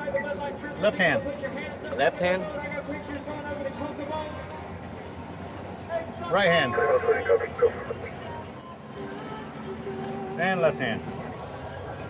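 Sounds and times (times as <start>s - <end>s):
boat engine running: 0.0s - 12.0s.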